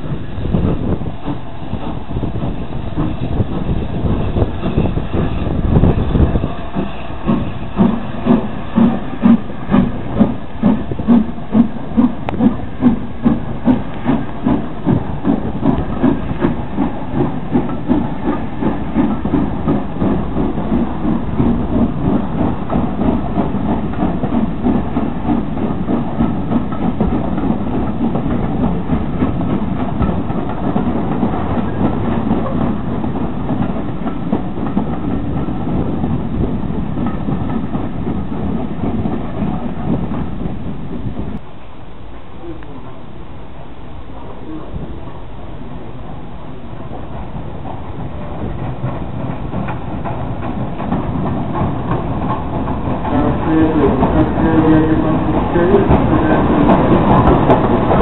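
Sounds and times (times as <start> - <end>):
steam hissing: 0.0 - 40.6, 42.4 - 58.0
steam locomotive exhaust beats: 0.0 - 58.0
train rumbling along track: 0.0 - 58.0.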